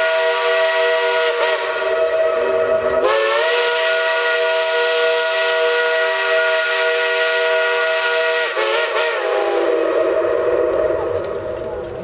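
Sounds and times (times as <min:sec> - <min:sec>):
steam locomotive chime whistle: 0:00.0 - 0:11.2.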